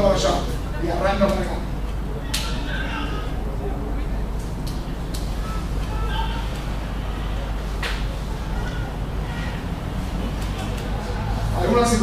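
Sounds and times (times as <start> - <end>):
low room hum: 0.0 - 12.0
faint indistinct speech: 2.0 - 11.7.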